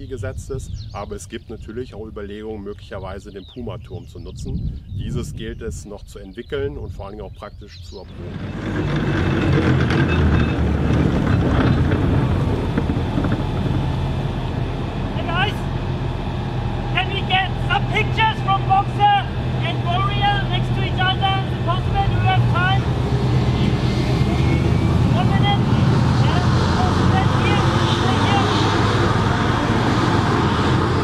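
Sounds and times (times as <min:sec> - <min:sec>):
tracked vehicle engine droning: 0:08.0 - 0:31.0.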